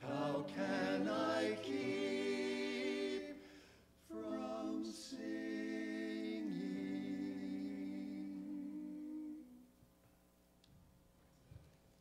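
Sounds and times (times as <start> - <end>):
choir singing a chord: 0.0 - 9.6.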